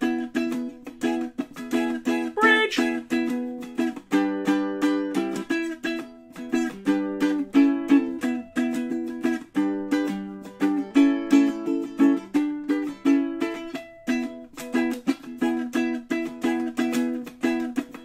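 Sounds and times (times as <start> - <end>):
ukulele strumming: 0.0 - 18.0.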